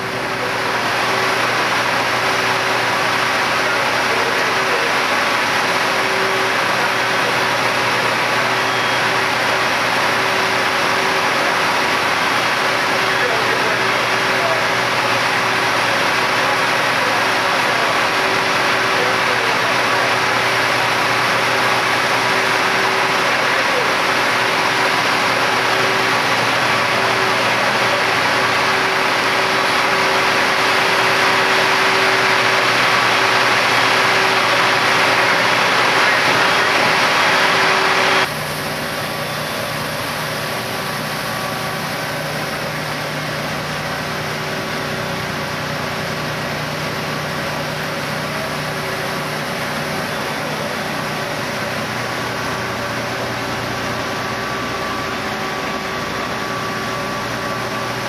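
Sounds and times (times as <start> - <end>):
fire engine hum: 0.0 - 58.0.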